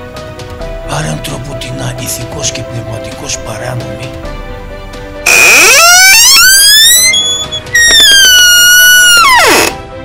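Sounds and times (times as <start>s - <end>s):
quiet background music: 0.0s - 10.0s
shrill wail rising in pitch: 5.3s - 9.7s.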